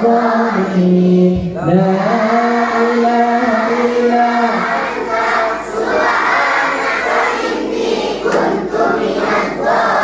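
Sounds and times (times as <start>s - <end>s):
crowd chanting in unison: 0.0s - 10.0s.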